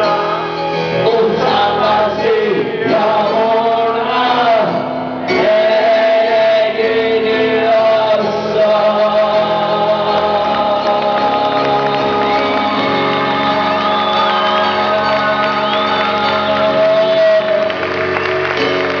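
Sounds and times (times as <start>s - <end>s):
man singing: 0.0s - 17.9s.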